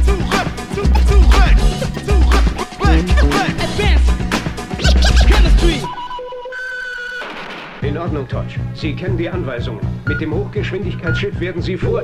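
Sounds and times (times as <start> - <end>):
turntable scratching: 0.8 - 5.9
heavy bass drum hits: 0.9 - 1.8.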